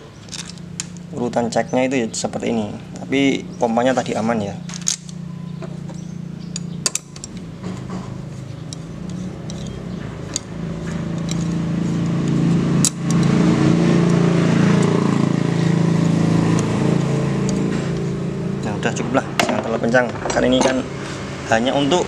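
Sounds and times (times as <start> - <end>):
vehicle engine running: 0.0 - 22.0
metallic clicks of hand tools: 8.7 - 11.6.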